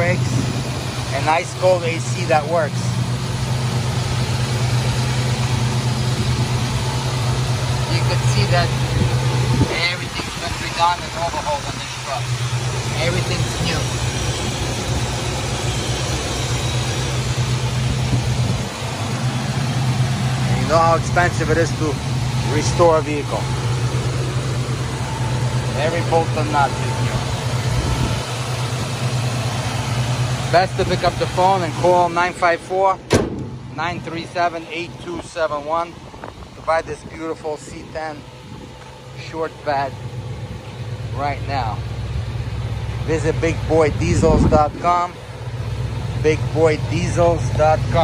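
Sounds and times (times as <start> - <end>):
truck engine idling: 0.0 - 48.0.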